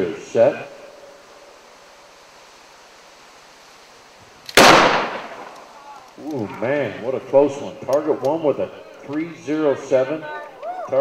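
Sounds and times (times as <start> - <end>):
revolver gunshot: 4.5 - 5.7.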